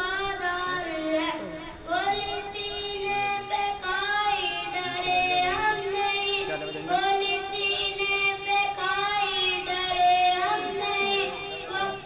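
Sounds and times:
boy singing into microphone: 0.0 - 12.0.

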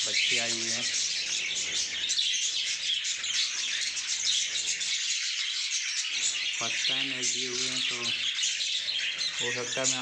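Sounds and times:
budgerigars chattering and chirping: 0.0 - 10.0.

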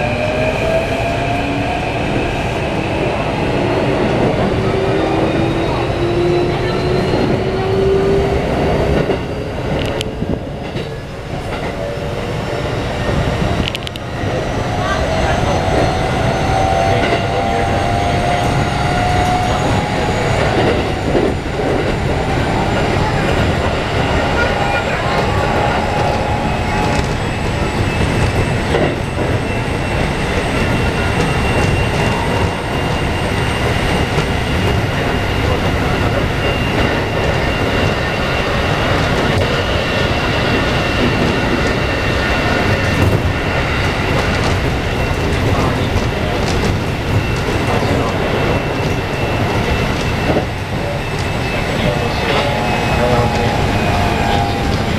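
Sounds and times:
train wheels rumbling on rail: 0.0 - 54.9.

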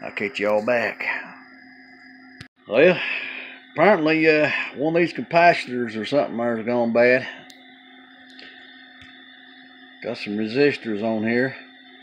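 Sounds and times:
thin steady tones: 0.0 - 12.0.

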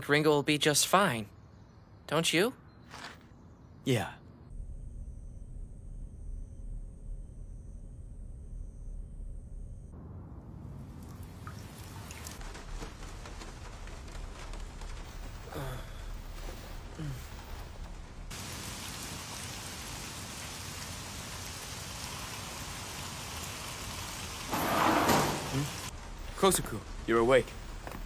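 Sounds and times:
rain falling: 10.4 - 28.0.

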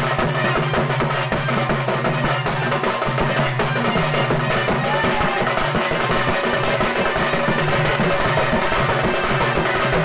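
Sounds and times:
barrel drum fast rhythm: 0.0 - 10.0.

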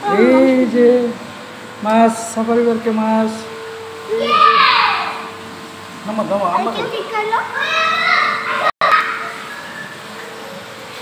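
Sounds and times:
child calling out: 0.0 - 0.4, 4.1 - 5.3, 6.8 - 9.3
steady background hum: 0.0 - 11.0.

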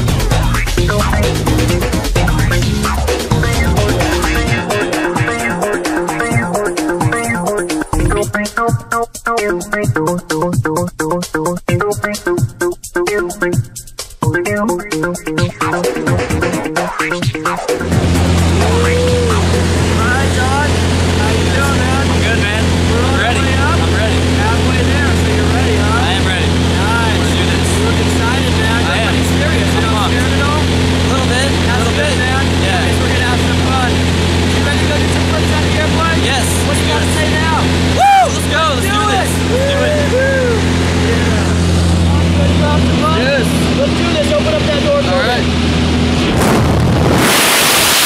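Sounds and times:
propeller plane engine drone: 0.0 - 8.3, 14.6 - 47.0
voices under engine: 17.8 - 46.4.

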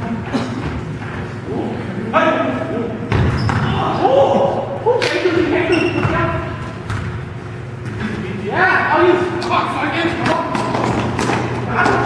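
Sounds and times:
players shouting in a gymnasium: 1.5 - 6.8.

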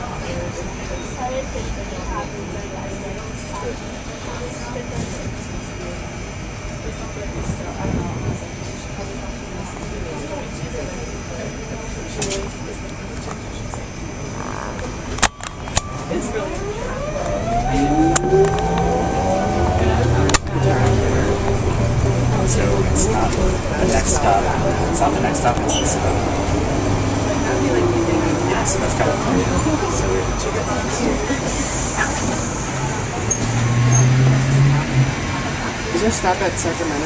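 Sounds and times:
bus drive whine rising: 0.0 - 37.0
bus ride noise: 0.0 - 37.0.

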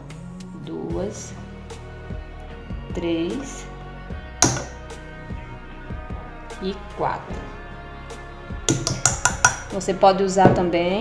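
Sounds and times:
background music: 0.0 - 11.0
plastic measuring spoon knocking: 4.4 - 4.7, 8.7 - 9.6.

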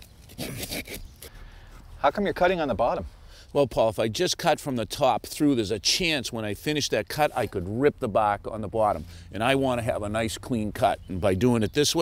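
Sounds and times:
handsaw scraping into root: 0.0 - 1.9.

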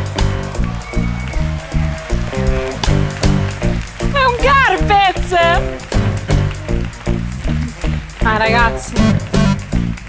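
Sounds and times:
live band upbeat instrumental: 0.0 - 10.0.

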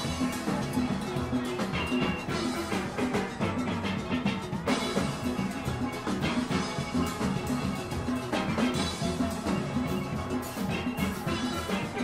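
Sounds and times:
drum kit steady beat: 0.0 - 12.0
steelpans playing rapid notes: 0.0 - 12.0.

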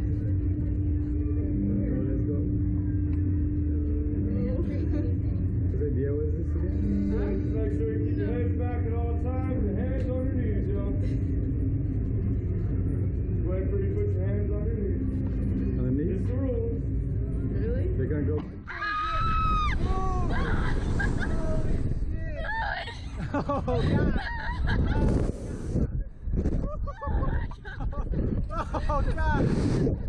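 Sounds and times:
steady low hum: 0.0 - 30.0
wind on microphone: 18.9 - 30.0.

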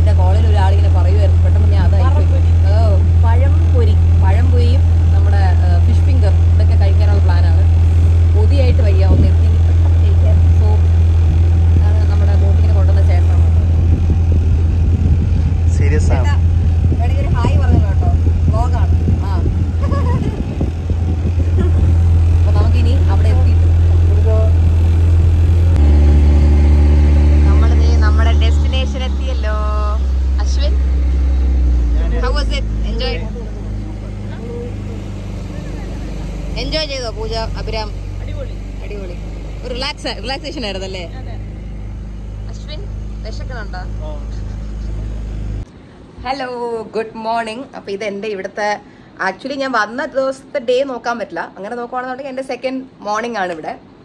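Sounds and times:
people talking: 0.0 - 11.0, 11.6 - 24.7, 25.6 - 41.7, 42.4 - 45.6, 46.2 - 53.9
motorboat engine droning: 0.0 - 45.8.

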